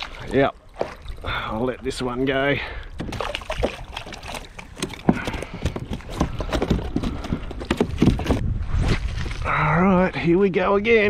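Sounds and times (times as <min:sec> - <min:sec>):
water sloshing: 0:00.0 - 0:08.4.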